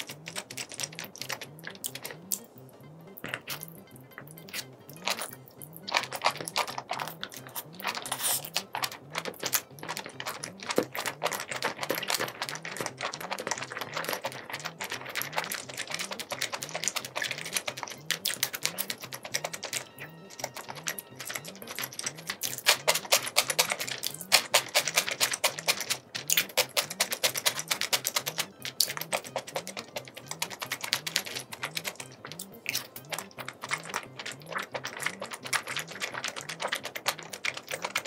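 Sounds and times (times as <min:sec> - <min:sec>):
wet chewing of food: 0:00.0 - 0:38.0.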